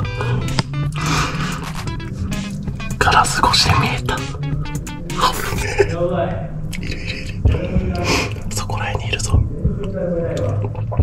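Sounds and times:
quiet background music: 0.0s - 11.0s
man whispering and breathing: 6.7s - 10.0s.

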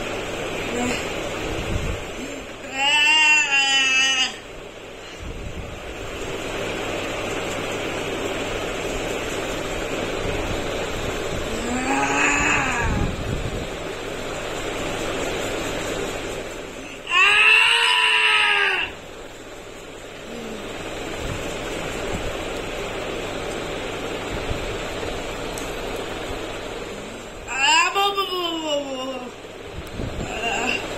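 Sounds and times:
boy crying and wailing: 2.2s - 4.5s, 11.5s - 13.2s, 16.8s - 19.0s, 27.5s - 29.4s, 30.2s - 30.8s.

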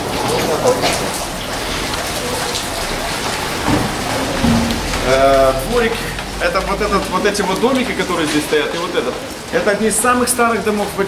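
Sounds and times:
rain on paving stones: 0.0s - 11.0s.

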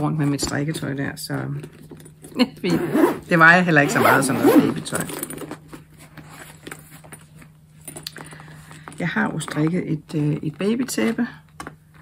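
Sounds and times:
handling clicks and rustles: 4.0s - 12.0s.

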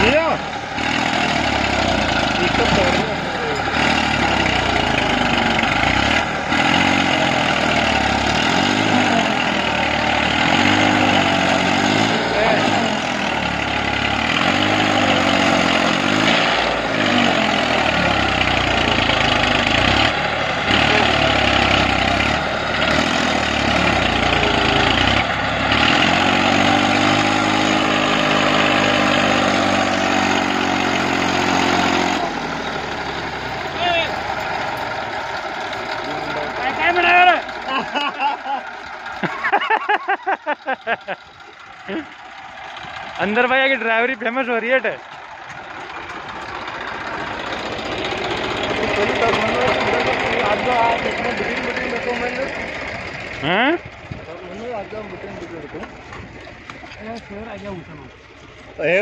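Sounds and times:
tractor diesel engine revving: 0.0s - 59.0s
wheels spinning in sandy soil: 0.0s - 59.0s.

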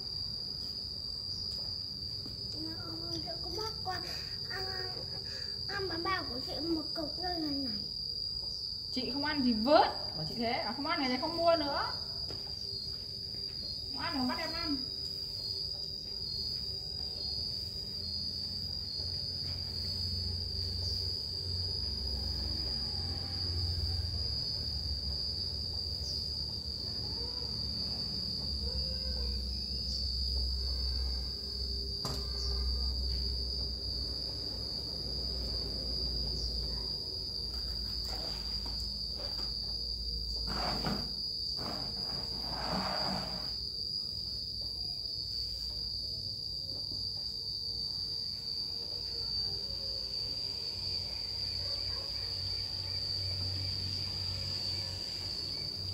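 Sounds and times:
high-pitched insect drone: 0.0s - 55.9s
rustling or scraping: 40.4s - 43.6s.

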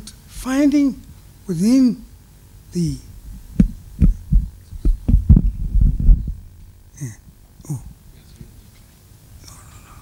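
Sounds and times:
microphone handling thumps: 3.1s - 6.9s.

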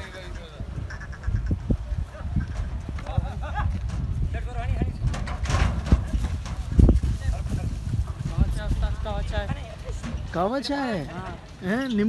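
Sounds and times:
hooves thudding on dirt: 1.4s - 12.0s.

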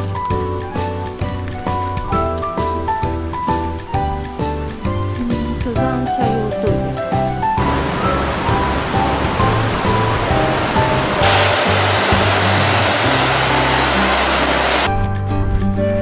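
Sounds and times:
background music: 0.0s - 16.0s
stream water rushing: 7.6s - 14.9s.

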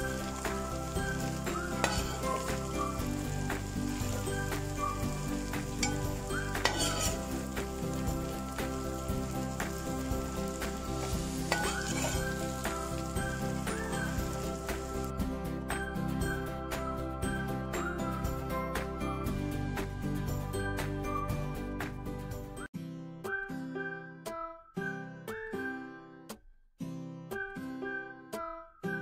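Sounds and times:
noodles sizzling in a pan: 0.0s - 15.2s
metal spatula scraping a pan: 0.2s - 15.1s.

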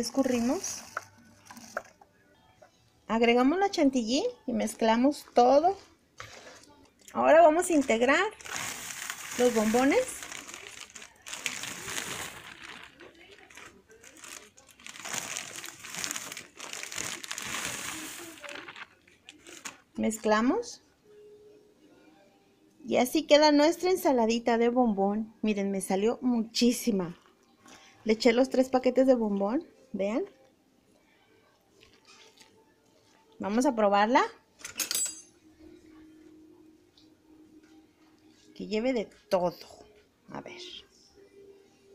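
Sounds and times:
plastic bags crinkling: 0.0s - 2.0s, 7.7s - 19.9s.

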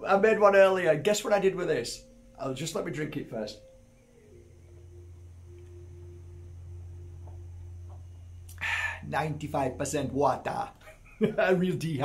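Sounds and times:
steady low hum: 0.0s - 12.0s
faint high tone: 0.1s - 10.5s.

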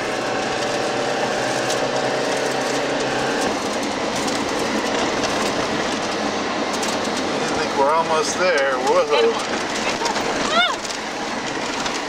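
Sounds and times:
car engine running: 0.0s - 12.0s
road noise: 0.0s - 12.0s
vehicle rattling over dirt road: 0.0s - 12.0s.

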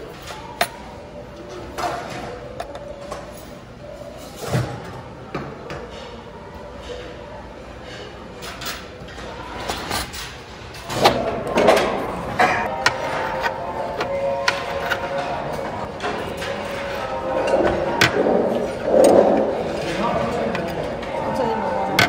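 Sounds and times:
faint murmur of voices: 0.0s - 22.0s
utensils clacking against dishes: 7.8s - 22.0s
background music: 12.7s - 19.8s.

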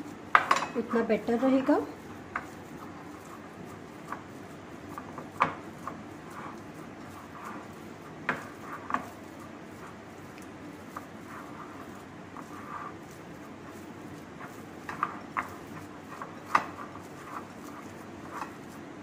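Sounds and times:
meat squishing by hand: 2.0s - 19.0s.

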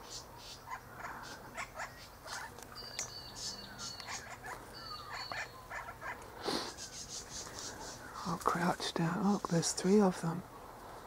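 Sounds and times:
birds chirping: 0.0s - 11.0s
thin whistled bird notes: 2.0s - 5.8s.

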